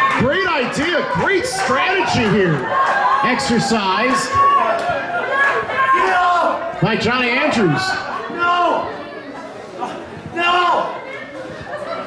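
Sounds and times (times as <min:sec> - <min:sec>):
men talking: 0:00.2 - 0:04.5, 0:06.4 - 0:09.0.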